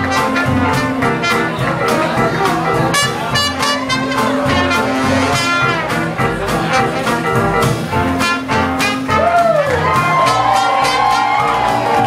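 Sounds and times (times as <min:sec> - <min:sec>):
jazz band with brass playing: 0:00.0 - 0:12.0.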